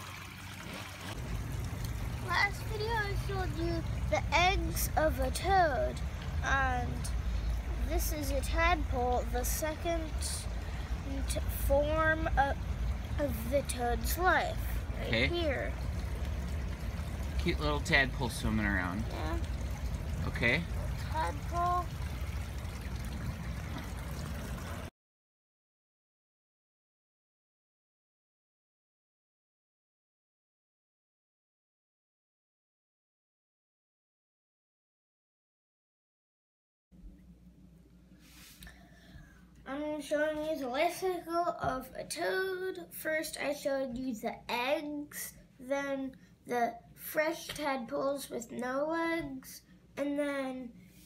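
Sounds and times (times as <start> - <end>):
water trickling in a pond: 0.0 - 24.9
low steady rumble: 0.1 - 24.9, 37.0 - 46.5.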